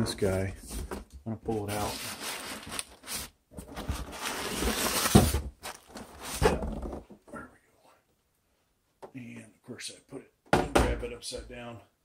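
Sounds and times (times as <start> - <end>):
cardboard scraping: 1.6 - 7.0
plastic packaging crinkling: 1.8 - 6.4.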